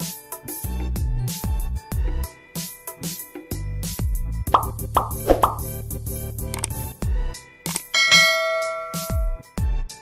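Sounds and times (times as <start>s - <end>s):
music with deep kick drum beat: 3.6s - 6.4s
bright bell chime: 8.0s - 9.4s.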